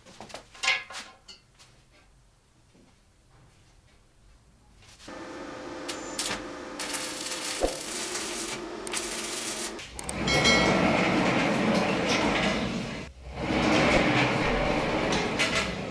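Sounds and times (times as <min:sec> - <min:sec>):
welding arc crackling: 0:05.1 - 0:10.2
metal carriage rolling on rail: 0:08.2 - 0:15.9.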